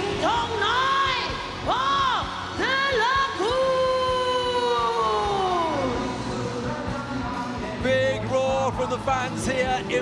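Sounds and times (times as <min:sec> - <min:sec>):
arena music: 0:00.0 - 0:10.0
crowd noise: 0:00.0 - 0:10.0.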